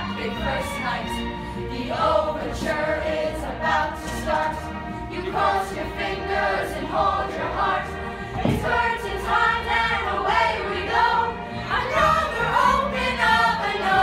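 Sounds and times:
recorded musical backing track: 0:00.0 - 0:14.0
young chorus singing: 0:00.0 - 0:14.0.

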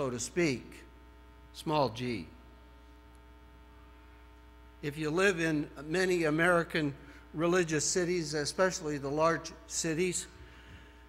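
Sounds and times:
electrical mains hum: 0:00.0 - 0:11.0
man's voice: 0:04.8 - 0:10.3.

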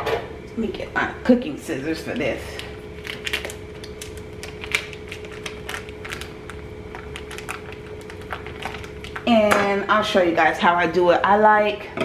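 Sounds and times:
plastic crinkling: 0:02.4 - 0:09.3.

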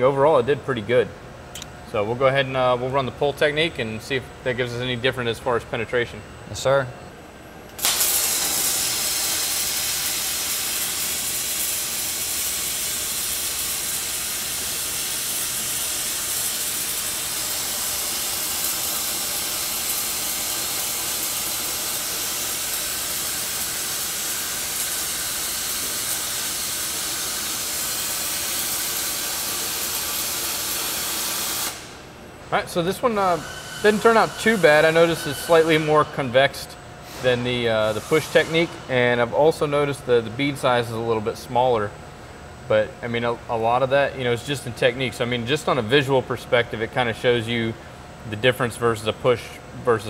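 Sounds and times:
welding arc hissing: 0:07.7 - 0:39.9.

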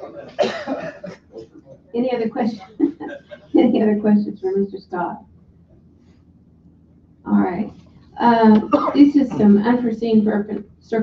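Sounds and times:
faint voices: 0:00.0 - 0:05.2, 0:07.3 - 0:10.6
person coughing: 0:00.3 - 0:01.1, 0:08.5 - 0:09.7.

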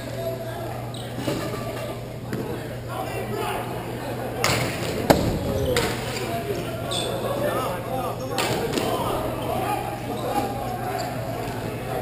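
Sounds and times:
players' voices and calls: 0:00.0 - 0:12.0.

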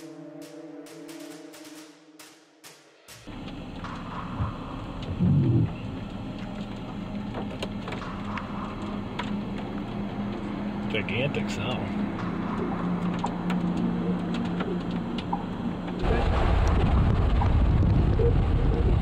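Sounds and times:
music with drum beat: 0:00.0 - 0:03.3
steady hum: 0:03.2 - 0:19.0
loud low rumble: 0:03.3 - 0:19.0
wind on microphone: 0:16.0 - 0:19.0.

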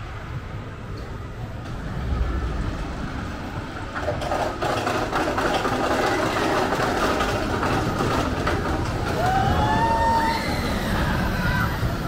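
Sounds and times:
roller coaster wheels rumbling: 0:00.0 - 0:12.0.

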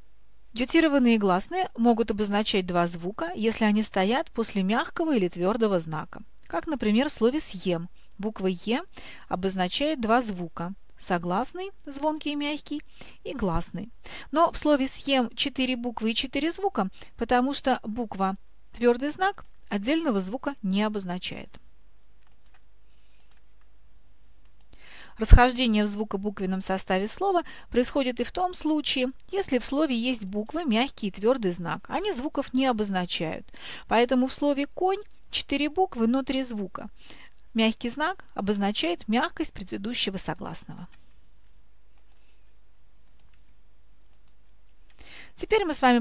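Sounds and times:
low background hiss: 0:00.0 - 0:46.0
faint sharp clicks: 0:22.2 - 0:22.6, 0:23.2 - 0:23.7, 0:43.0 - 0:43.5
faint clicks: 0:22.2 - 0:23.8, 0:40.9 - 0:42.3, 0:43.0 - 0:43.5, 0:44.1 - 0:45.0.

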